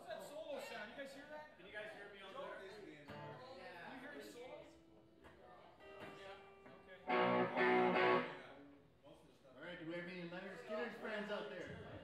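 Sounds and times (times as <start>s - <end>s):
held guitar note: 5.9s - 8.5s
guitar chord strummed: 6.0s - 8.4s.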